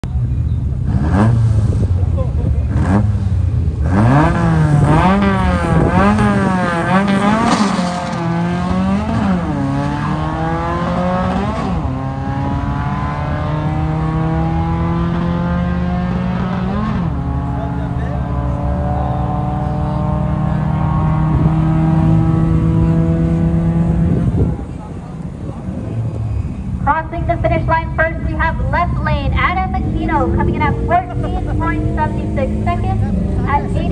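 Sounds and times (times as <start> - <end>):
truck engines revving: 0.0 - 33.9.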